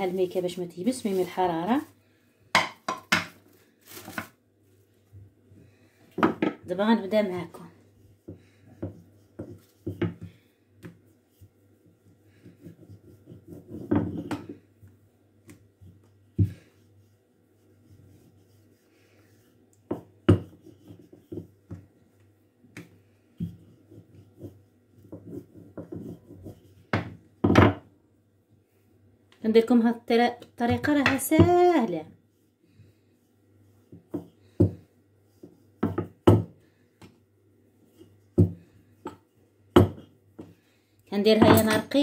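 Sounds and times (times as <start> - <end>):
rolling pin knocking on marble: 35.8 - 36.6.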